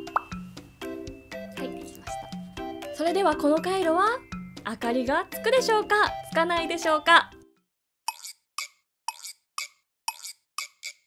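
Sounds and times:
plucky plop-tick sound effect: 0:00.1 - 0:00.3.

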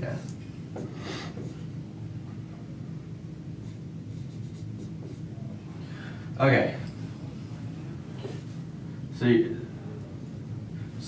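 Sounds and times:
low room hum: 0:00.0 - 0:11.0
marker writing on a whiteboard: 0:00.7 - 0:01.7, 0:03.6 - 0:05.6.

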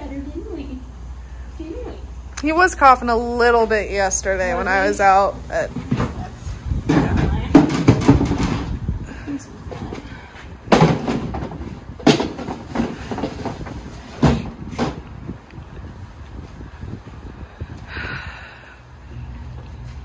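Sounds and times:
plastic container knocking on bin: 0:06.9 - 0:08.7, 0:10.7 - 0:15.0.

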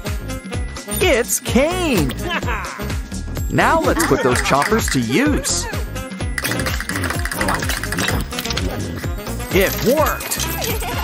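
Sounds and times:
background music: 0:00.0 - 0:11.0
rapid mechanical grinding chatter: 0:06.4 - 0:11.0.

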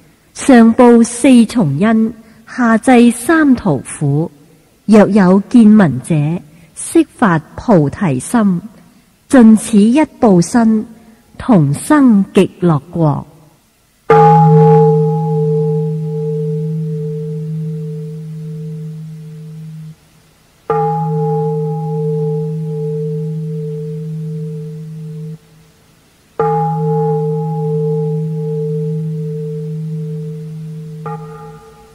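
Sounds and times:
bowl bell ringing: 0:14.1 - 0:20.0, 0:20.7 - 0:25.5, 0:26.4 - 0:31.9.

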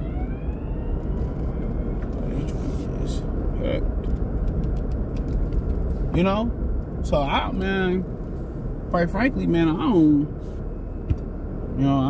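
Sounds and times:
ambulance siren wailing: 0:00.0 - 0:02.6
car road rumble from inside: 0:00.0 - 0:12.0.

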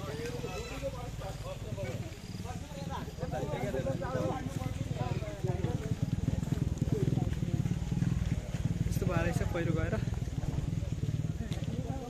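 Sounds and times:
wind buffeting microphone: 0:01.1 - 0:12.0.

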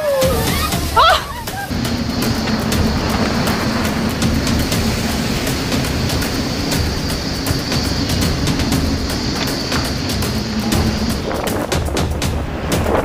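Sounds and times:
rush of wind and sea: 0:00.0 - 0:13.0
ship engine droning: 0:00.0 - 0:13.0.

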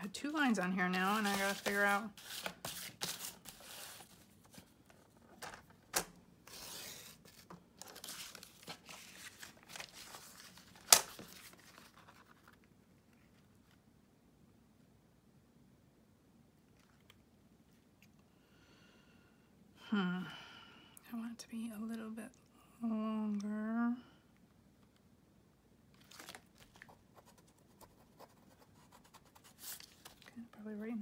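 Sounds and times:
paper rustling and sliding: 0:00.9 - 0:12.7, 0:29.3 - 0:30.3.

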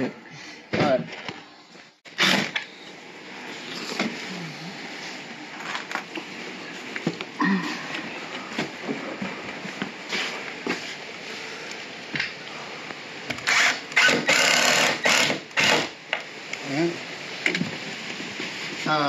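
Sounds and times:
cordless drill driving screw: 0:02.2 - 0:02.7, 0:13.4 - 0:15.9.

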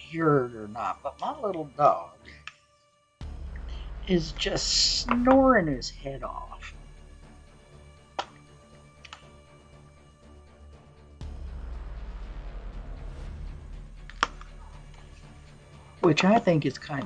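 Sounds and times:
quiet background music: 0:00.0 - 0:17.0.

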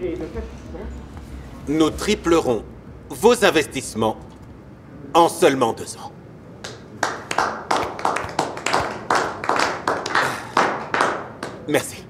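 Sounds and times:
people clapping: 0:06.6 - 0:12.0.

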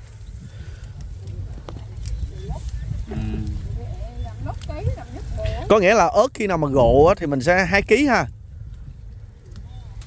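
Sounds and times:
steady low rumble: 0:02.8 - 0:05.5.

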